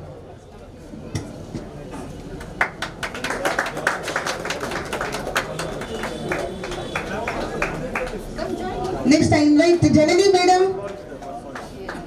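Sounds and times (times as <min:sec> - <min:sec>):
indistinct chatter: 0:00.0 - 0:12.0
small crowd hand clapping: 0:02.3 - 0:09.0, 0:10.8 - 0:12.0.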